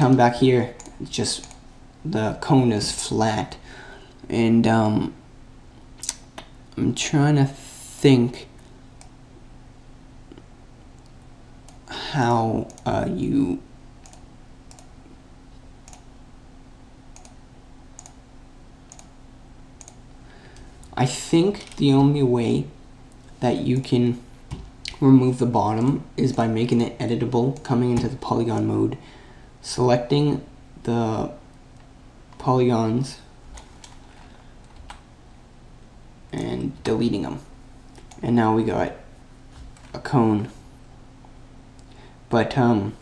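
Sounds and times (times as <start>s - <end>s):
faint steady hiss: 0.0s - 43.0s
low steady hum: 0.0s - 43.0s
computer mouse clicks: 0.8s - 1.6s, 12.6s - 12.9s, 14.0s - 14.9s, 15.8s - 16.1s, 17.2s - 17.4s, 18.0s - 18.2s, 18.9s - 19.1s, 19.8s - 20.0s.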